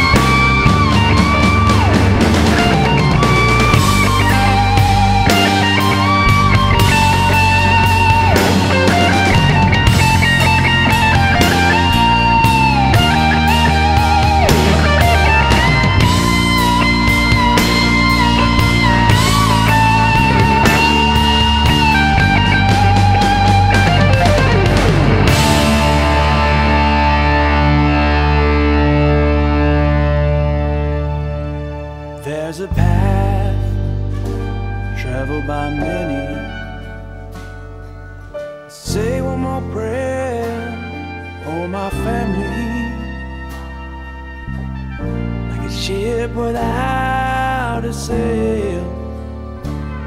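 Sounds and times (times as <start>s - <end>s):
blues-rock band playing: 0.0s - 50.0s
lead electric guitar bends: 0.0s - 50.0s
steady bass: 0.0s - 50.0s.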